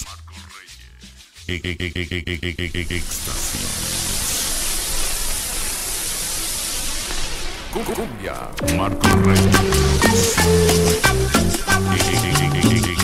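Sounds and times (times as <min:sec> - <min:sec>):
stuttering repeat effect: 0:00.0 - 0:03.5
white noise hiss: 0:02.8 - 0:12.5.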